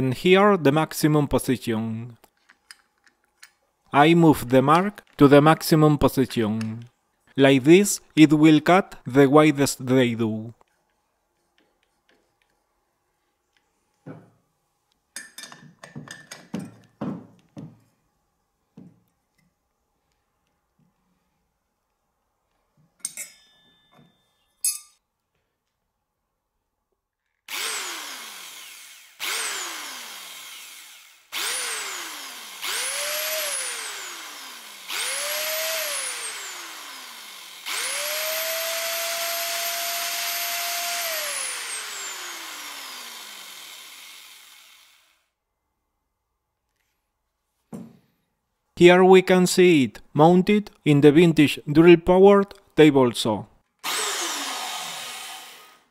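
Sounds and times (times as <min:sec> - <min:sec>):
electric drill whining: 0:27.5 - 0:45.3, 0:53.8 - 0:55.9.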